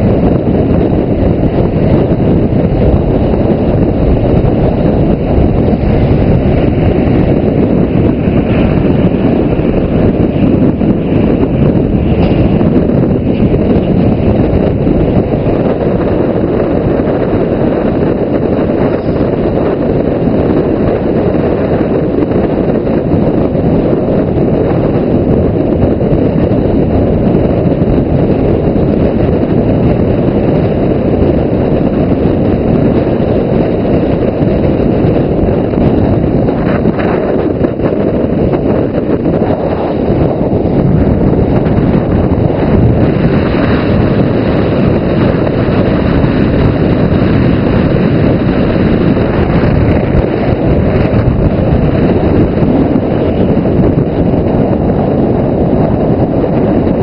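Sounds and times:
road rumble: 0.0s - 57.0s
wind buffeting microphone: 0.0s - 57.0s.

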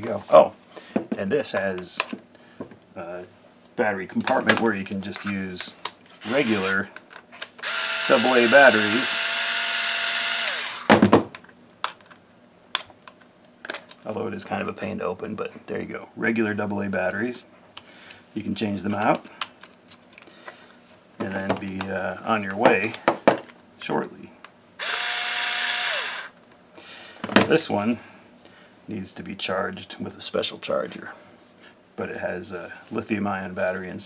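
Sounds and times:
electric screwdriver whining: 6.2s - 6.8s, 7.6s - 10.9s, 24.8s - 26.3s.

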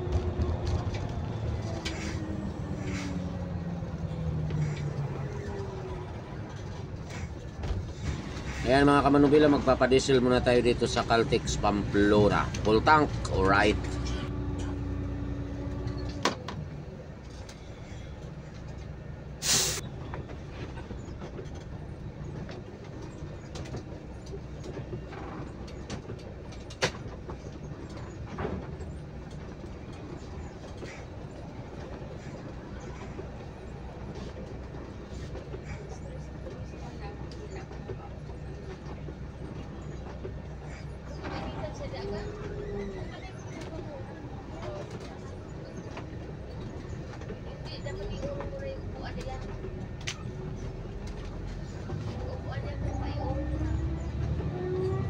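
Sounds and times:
diesel bus engine running: 0.0s - 55.0s
short sharp air hiss: 19.4s - 19.8s.

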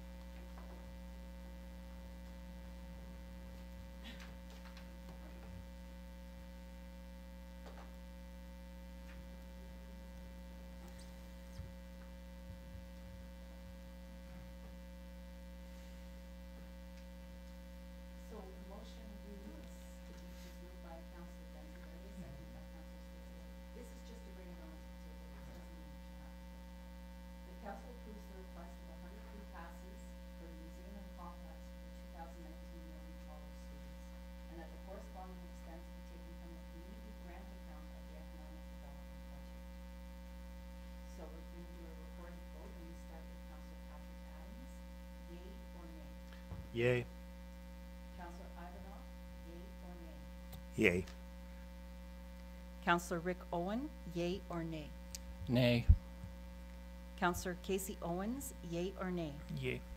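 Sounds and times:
electrical mains hum: 0.0s - 59.9s
faint indistinct voices: 59.5s - 59.8s.

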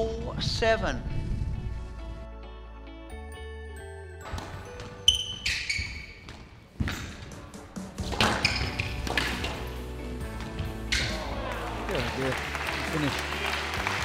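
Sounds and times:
squash ball hits: 8.0s - 9.7s.

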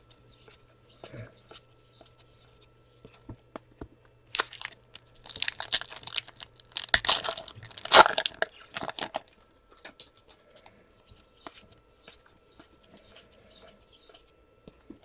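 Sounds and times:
foil wrapper tearing and crinkling: 4.3s - 9.3s.

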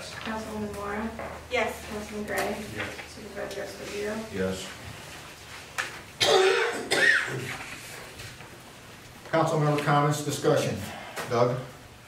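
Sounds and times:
person coughing: 6.2s - 7.5s.

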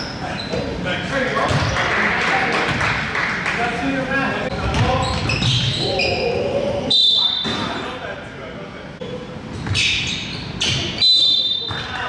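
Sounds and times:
sneakers squeaking: 0.0s - 1.9s, 4.5s - 7.9s, 9.0s - 12.0s
players calling out: 4.5s - 7.9s.

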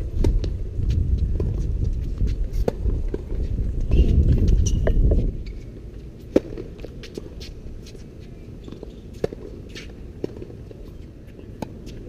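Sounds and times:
wind buffeting microphone: 0.0s - 5.7s
tennis ball hit and bouncing: 4.5s - 5.6s, 6.3s - 7.3s, 8.6s - 10.7s.

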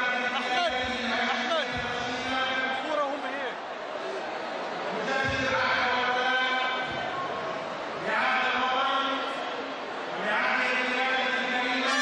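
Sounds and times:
man chanting over loudspeaker: 0.0s - 3.6s, 4.9s - 7.1s, 8.0s - 9.6s, 10.2s - 12.0s.

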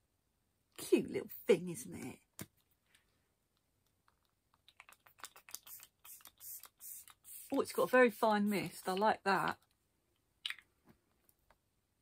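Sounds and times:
spray bottle hissing sprays: 5.2s - 7.9s.

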